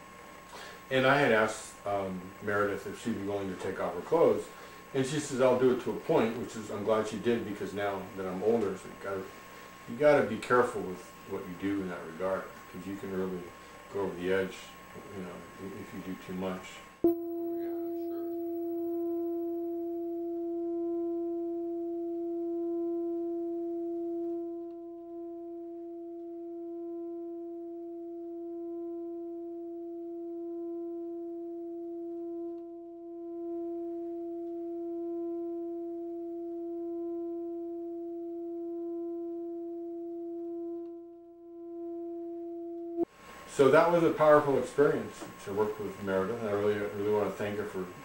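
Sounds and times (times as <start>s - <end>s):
mid-pitched humming tone: 0.0s - 48.0s.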